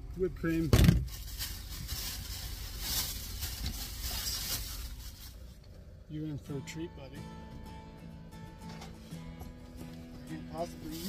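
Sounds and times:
plastic packaging crinkling: 1.0s - 5.4s.

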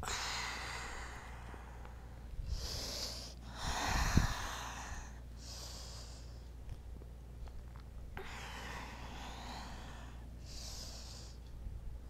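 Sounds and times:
woman breathing: 0.0s - 6.6s, 8.1s - 11.7s.

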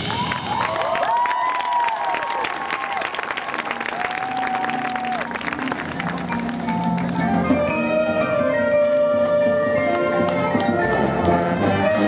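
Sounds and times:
crowd applauding and cheering: 0.0s - 8.0s
drawn-out whoops: 3.9s - 5.4s.

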